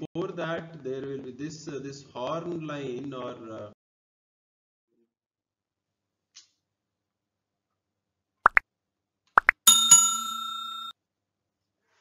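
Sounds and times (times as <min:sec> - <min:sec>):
quick pops rising in pitch: 0:09.4 - 0:09.8
notification bell ringing: 0:09.7 - 0:10.9.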